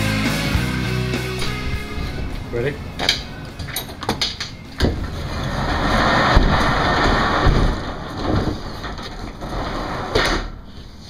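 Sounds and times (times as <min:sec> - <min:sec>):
storage unit door opening: 0:00.7 - 0:11.0
door thumps: 0:01.4 - 0:05.3, 0:06.1 - 0:08.8.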